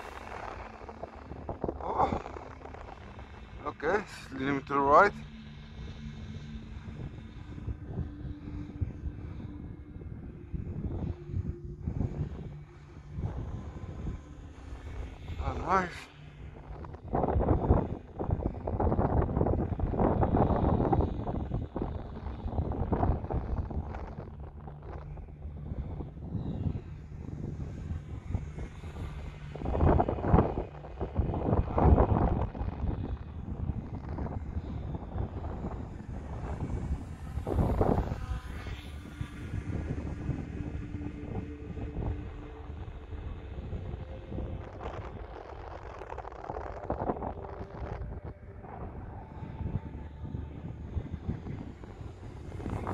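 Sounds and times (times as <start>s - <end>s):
model glider motor whine: 0.0s - 52.9s
wind buffeting microphone: 0.0s - 52.9s.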